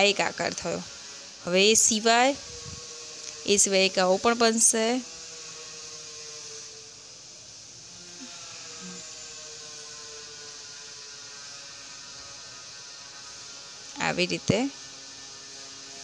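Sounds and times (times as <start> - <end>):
low pitched hum: 0.0 - 15.9
constant hiss: 0.0 - 16.0.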